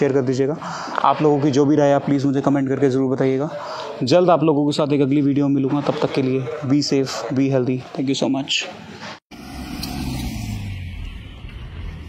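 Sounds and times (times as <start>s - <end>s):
outdoor noise: 0.0s - 12.0s
vehicle engine humming: 9.3s - 12.0s.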